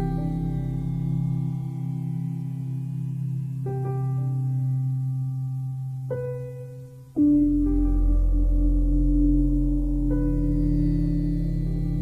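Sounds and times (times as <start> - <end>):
low sustained drone: 0.0 - 12.0.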